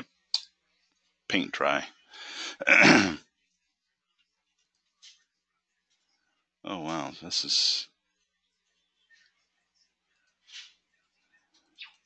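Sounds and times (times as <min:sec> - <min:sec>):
man clearing throat: 0:02.5 - 0:03.3.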